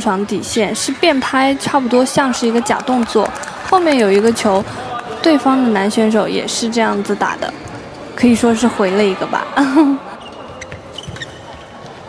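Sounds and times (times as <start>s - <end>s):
sports hall background noise: 0.0s - 12.0s
shoe squeaks: 10.1s - 12.0s.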